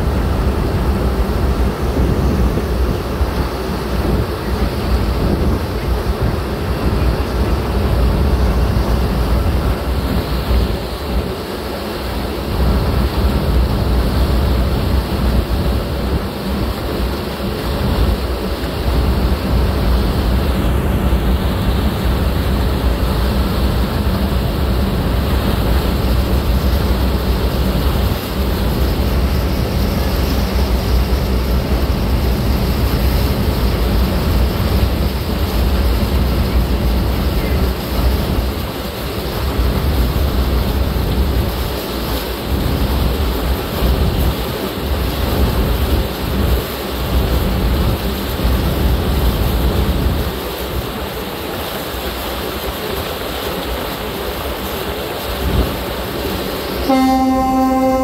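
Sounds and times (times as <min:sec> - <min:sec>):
wind on microphone: 0:00.0 - 0:11.4
water churning: 0:00.0 - 0:47.8
boat engine low rumble: 0:00.0 - 0:58.0.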